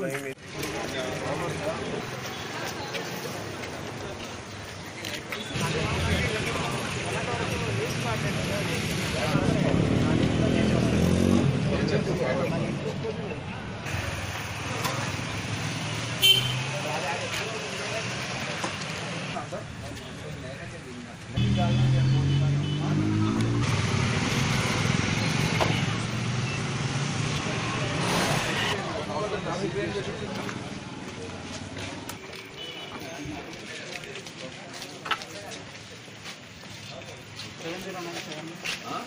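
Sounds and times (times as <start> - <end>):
people talking: 0.0 - 14.0, 16.5 - 23.6, 27.3 - 39.0
vehicle engines passing: 0.4 - 32.4.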